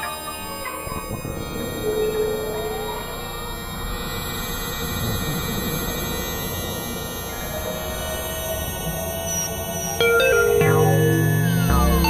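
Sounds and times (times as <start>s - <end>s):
steady high electronic tones: 9.8s - 12.0s.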